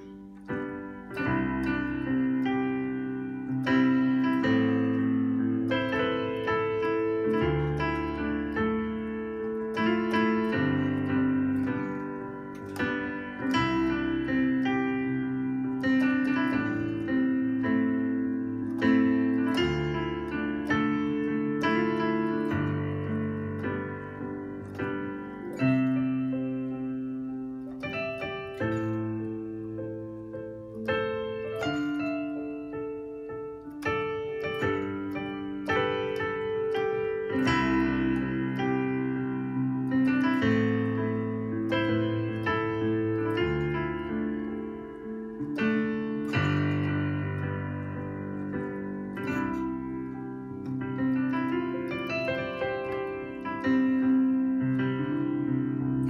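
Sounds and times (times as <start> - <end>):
digital piano chords: 0.0 - 56.0.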